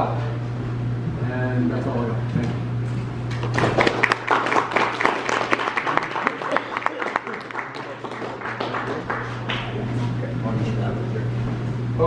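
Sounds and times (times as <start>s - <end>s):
audience applauding: 3.4s - 9.8s.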